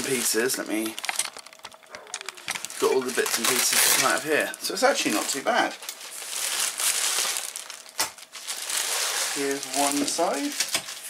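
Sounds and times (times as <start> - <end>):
fabric and plastic rustling: 0.0 - 11.0.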